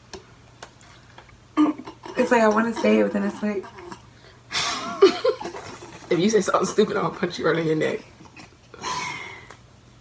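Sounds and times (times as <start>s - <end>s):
low steady hum: 0.0s - 10.0s
woman speaking: 2.1s - 3.9s.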